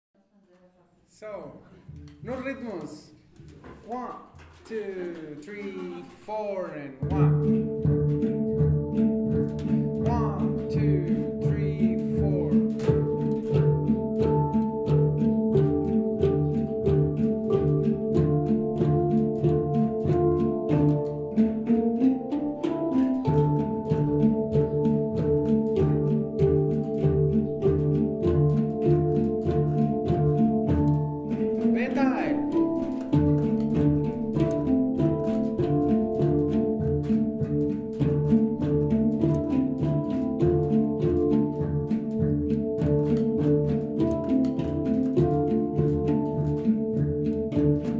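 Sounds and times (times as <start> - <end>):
person speaking: 0.6 - 7.6, 9.9 - 12.7, 31.4 - 32.6
handpans playing rhythm: 3.9 - 47.9.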